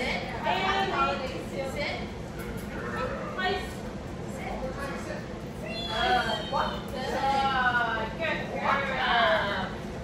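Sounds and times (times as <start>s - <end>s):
people talking: 2.9s - 9.8s.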